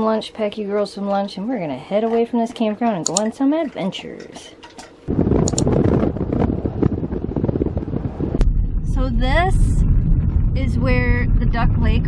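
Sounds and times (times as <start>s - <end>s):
wind buffeting microphone: 4.8s - 12.0s.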